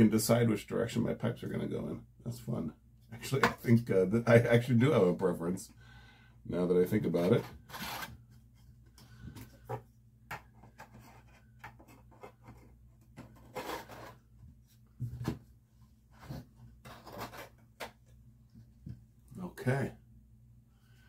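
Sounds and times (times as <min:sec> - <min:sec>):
wood scraping on wood: 0:07.0 - 0:08.3, 0:09.4 - 0:14.4, 0:16.1 - 0:18.0.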